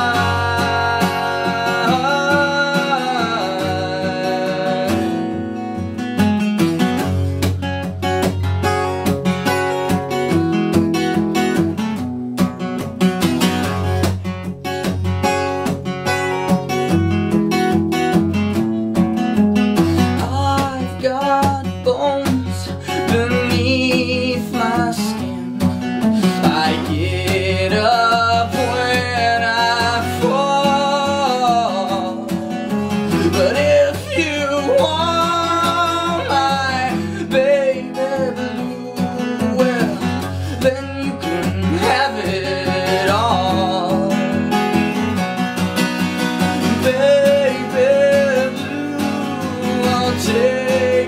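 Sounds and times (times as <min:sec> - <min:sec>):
man singing: 0:00.0 - 0:05.8, 0:19.9 - 0:45.2, 0:46.3 - 0:51.0
acoustic guitar strumming: 0:00.0 - 0:51.0.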